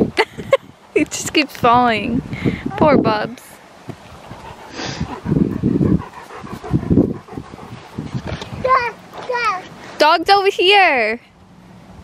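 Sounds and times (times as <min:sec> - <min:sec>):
dog panting: 0:04.1 - 0:09.7.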